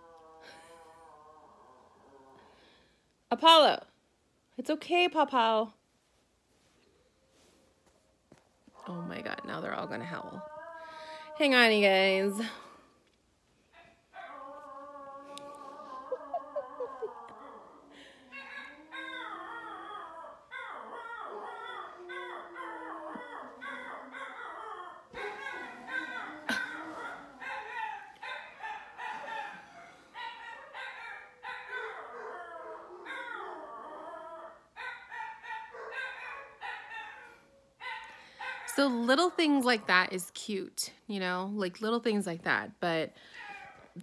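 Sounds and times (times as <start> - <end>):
dogs howling and yipping: 14.1 - 40.1, 43.3 - 44.0.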